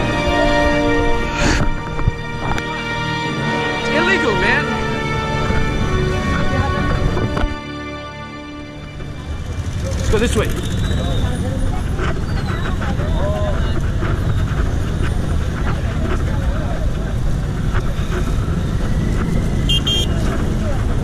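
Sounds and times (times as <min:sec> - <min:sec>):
city street traffic: 0:00.0 - 0:21.0
scattered voices: 0:09.0 - 0:18.6
vehicle horn beeps: 0:19.6 - 0:20.4.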